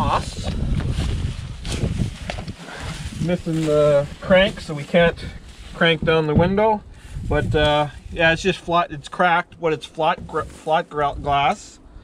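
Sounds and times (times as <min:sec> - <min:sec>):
wind rumbling on microphone: 0:00.0 - 0:09.0, 0:10.1 - 0:12.0
footsteps through dry grass: 0:00.6 - 0:06.2, 0:06.9 - 0:08.4.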